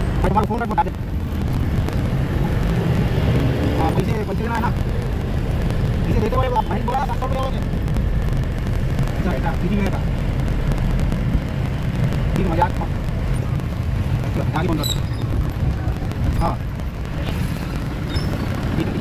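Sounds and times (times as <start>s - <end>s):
van engine and road rumble: 0.0s - 19.0s
voices talking: 1.8s - 8.3s, 9.0s - 19.0s.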